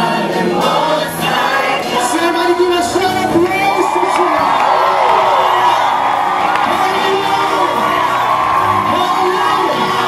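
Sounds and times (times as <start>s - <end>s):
choir singing gospel in harmony: 0.0s - 10.0s.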